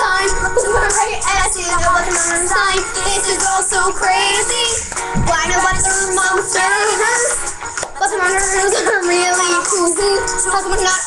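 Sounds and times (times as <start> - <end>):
girl singing: 0.0 - 11.0
music: 0.0 - 11.0.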